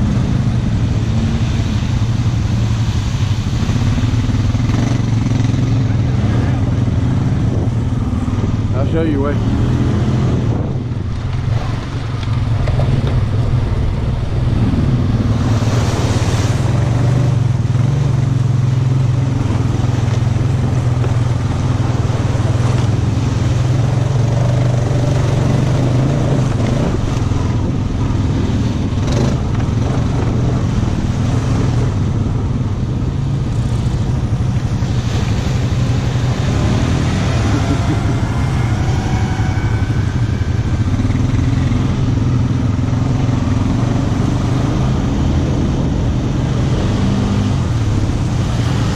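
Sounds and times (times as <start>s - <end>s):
atv engine running: 0.0s - 48.9s.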